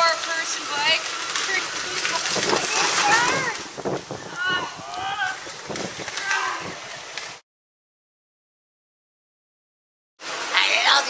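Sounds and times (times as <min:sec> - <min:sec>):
voices calling out: 0:00.0 - 0:07.4.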